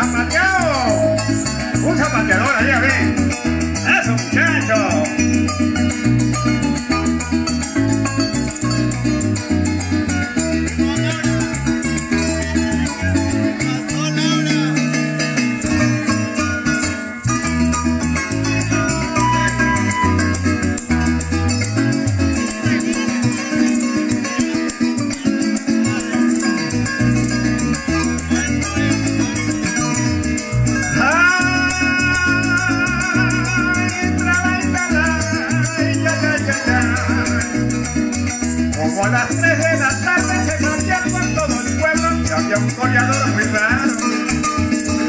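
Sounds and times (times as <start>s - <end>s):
cuatro strumming: 0.0s - 45.0s
electric bass: 0.0s - 45.0s
maracas: 0.0s - 45.0s.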